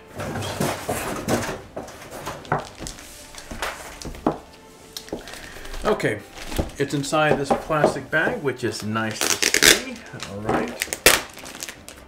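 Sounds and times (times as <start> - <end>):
plastic bag rustling: 0.0 - 12.0
packaging knocking: 0.1 - 12.0.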